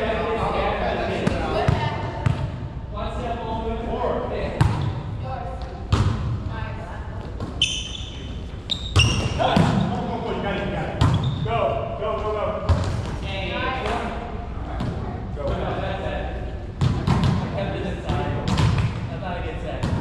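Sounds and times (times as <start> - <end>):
players' voices: 0.0 - 20.0.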